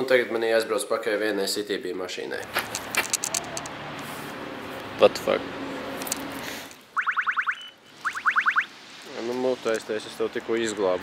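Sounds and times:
scooter alarm rising chirps: 0:07.0 - 0:08.7
scooter alarm steady beep: 0:07.0 - 0:08.7.

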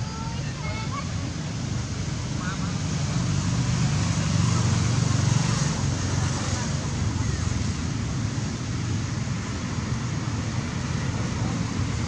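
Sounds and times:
passing vehicle engine rumble: 0:00.0 - 0:12.0.

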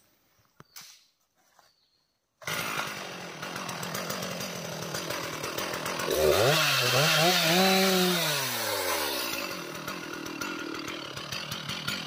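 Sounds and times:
chainsaw cutting tree trunk: 0:02.4 - 0:12.0.

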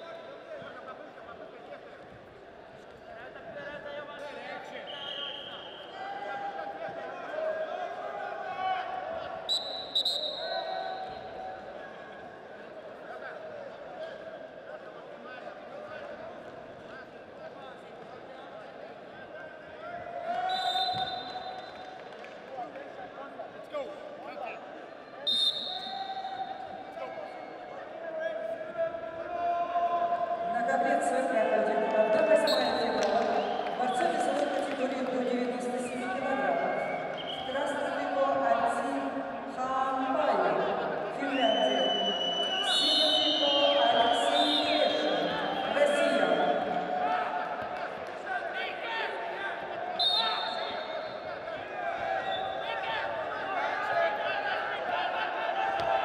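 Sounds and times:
shouts echoing in arena: 0:00.0 - 0:56.0.

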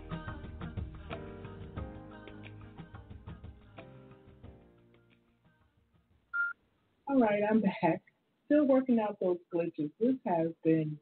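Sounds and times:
short electronic beep: 0:06.4 - 0:06.6.

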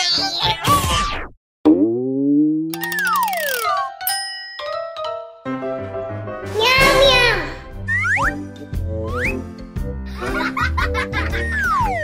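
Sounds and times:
rattle of clicks: 0:02.8 - 0:03.7.

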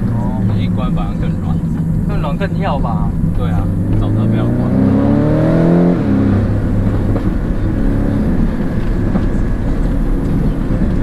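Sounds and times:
car engine accelerating and shifting: 0:00.0 - 0:11.0
road noise: 0:00.0 - 0:11.0.

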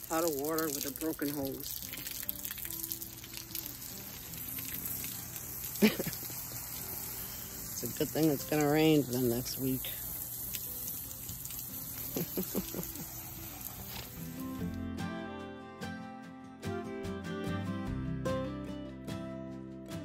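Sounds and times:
water spraying from garden hose: 0:00.0 - 0:14.8
background music with plucked guitar: 0:00.0 - 0:20.0.

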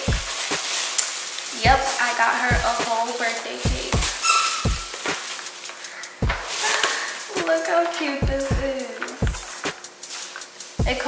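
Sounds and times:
background music with bass thumps: 0:00.0 - 0:00.4, 0:01.6 - 0:01.8, 0:02.5 - 0:02.8, 0:03.7 - 0:05.1, 0:06.2 - 0:06.5, 0:08.2 - 0:09.8, 0:10.8 - 0:11.0
plastic bag crinkling: 0:00.0 - 0:08.2, 0:08.8 - 0:10.8.

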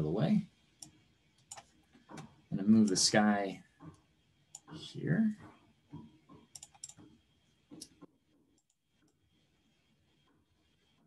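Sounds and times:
computer mouse and keyboard clicks: 0:00.8 - 0:03.0, 0:05.4 - 0:09.2.

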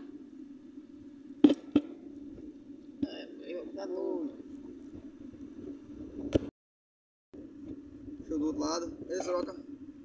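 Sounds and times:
steady low hum: 0:00.0 - 0:06.5, 0:07.4 - 0:10.0.

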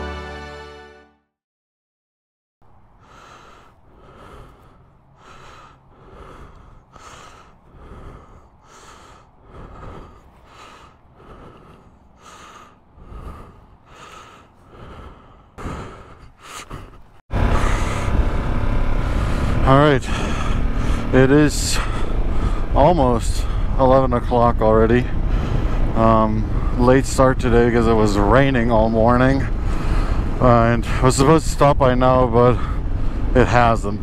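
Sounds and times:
breathing inside a helmet: 0:03.0 - 0:18.2, 0:29.6 - 0:30.4
motorcycle engine: 0:17.3 - 0:31.2
wind noise: 0:17.4 - 0:21.0.

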